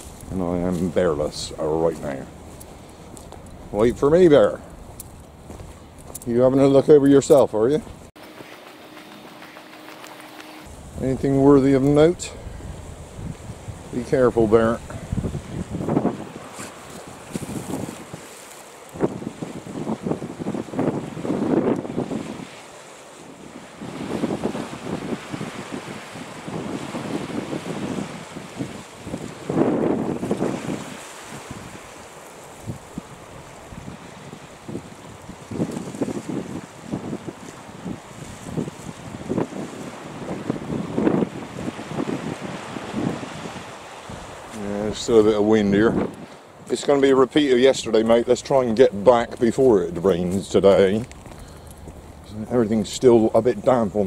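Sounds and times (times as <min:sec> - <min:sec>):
wind on microphone: 0:00.0 - 0:46.7
sea waves breaking on rocks: 0:06.0 - 0:54.0.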